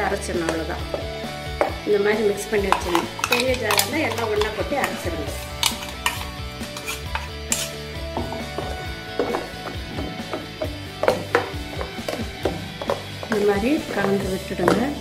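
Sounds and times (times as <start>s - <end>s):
background music: 0.0s - 15.0s
steel spoon clinking on steel: 2.7s - 7.8s.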